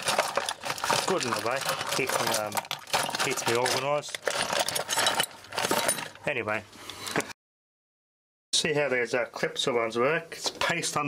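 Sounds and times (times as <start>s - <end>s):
hands rummaging through parts box: 0.0s - 6.2s
plastic and metal clinks and rattles: 0.0s - 6.3s.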